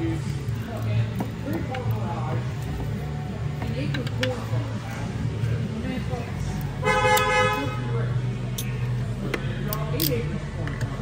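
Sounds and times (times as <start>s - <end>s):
vehicle horn honk: 6.8s - 8.0s.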